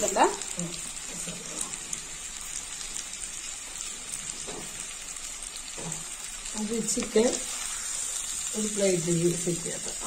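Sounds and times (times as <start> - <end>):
chicken frying in oil: 0.0 - 10.0.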